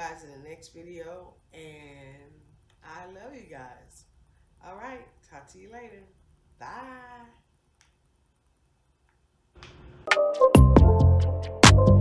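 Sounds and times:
woman saying bye: 4.6s - 7.5s.

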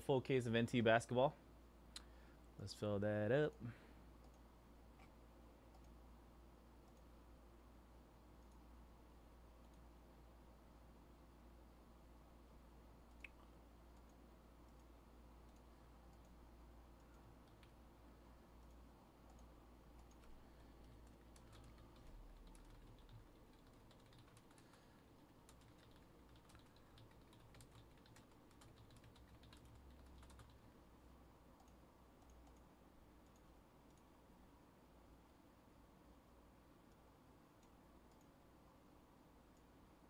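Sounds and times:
typing on computer keyboard: 19.3s - 30.7s.

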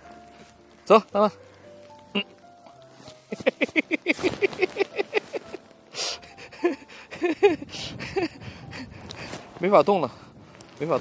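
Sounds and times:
person laughing: 3.3s - 8.5s
sharp breath: 5.9s - 7.1s.

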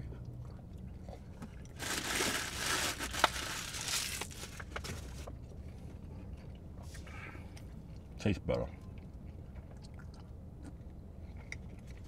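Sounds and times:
paper crinkling and rustling: 1.8s - 5.3s.

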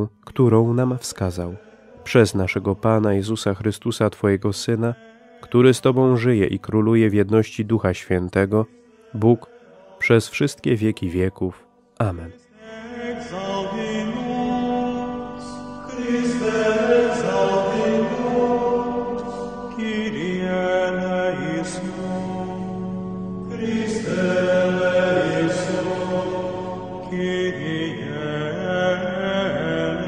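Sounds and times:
voices chanting held notes: 12.0s - 30.0s.

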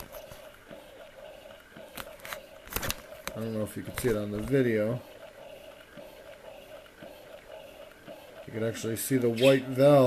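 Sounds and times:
electric breast pump humming: 0.0s - 10.0s.

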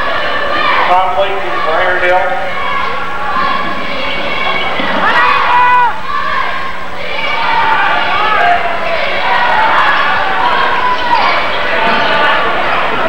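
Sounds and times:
crowd shouting and cheering: 0.0s - 13.0s.

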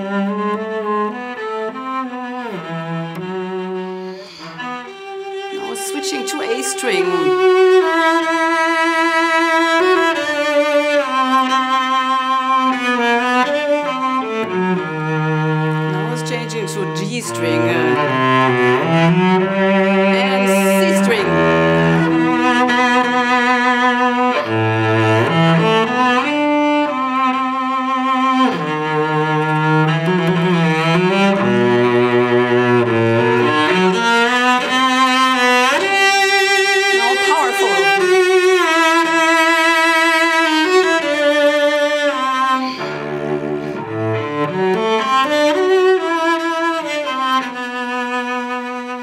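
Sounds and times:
bowed cello melody: 0.0s - 49.0s.

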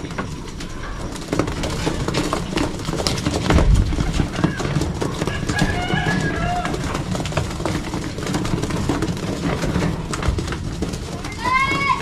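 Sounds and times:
pigeons pecking on wood: 0.0s - 12.0s
wings flapping: 0.0s - 12.0s.

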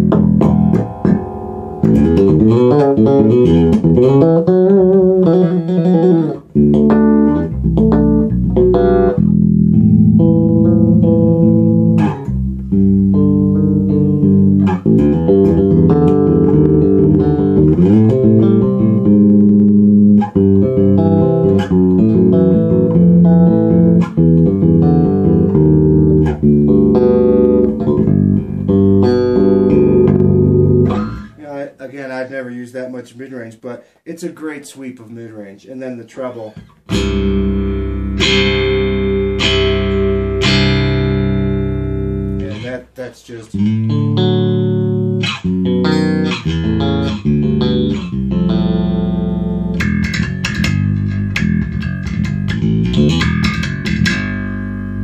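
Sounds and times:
electric bass playing notes: 0.0s - 31.4s, 36.6s - 55.0s.

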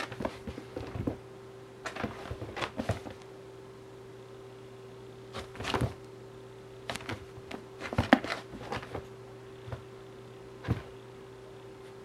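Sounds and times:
cat paws thumping and scraping: 0.0s - 1.2s, 1.8s - 3.2s, 5.3s - 6.0s, 6.9s - 9.9s, 10.6s - 11.0s.

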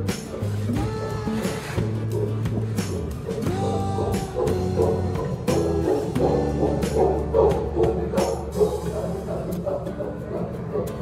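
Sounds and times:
music with held notes and beat: 0.0s - 11.0s.

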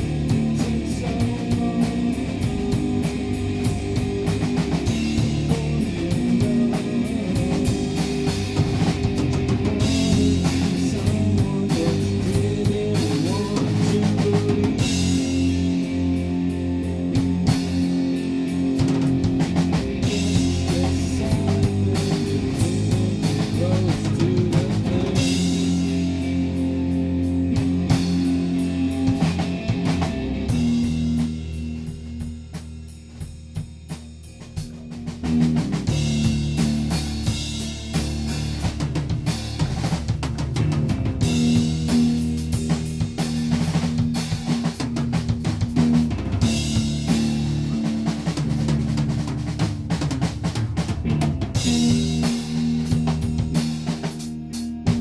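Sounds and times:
rock band playing live: 0.0s - 55.0s
steady drum beat: 0.0s - 55.0s
sustained guitar chords: 0.0s - 55.0s.

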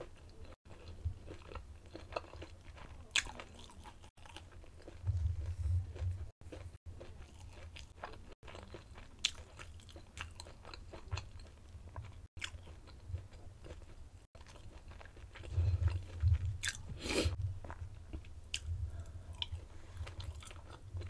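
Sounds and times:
person chewing food: 0.0s - 21.0s.

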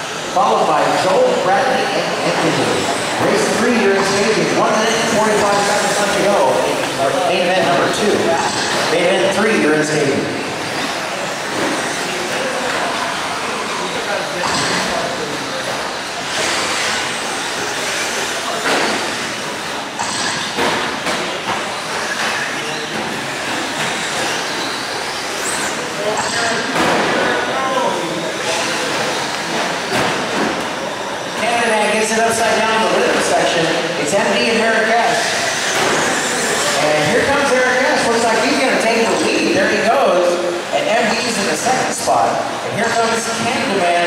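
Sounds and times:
toy truck motors whining: 15.9s - 19.5s.

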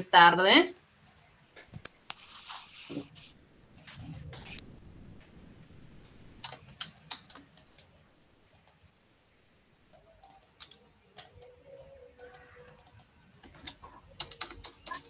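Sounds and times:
computer keyboard typing: 0.6s - 2.0s, 8.5s - 8.8s, 10.0s - 11.5s, 12.2s - 15.0s.

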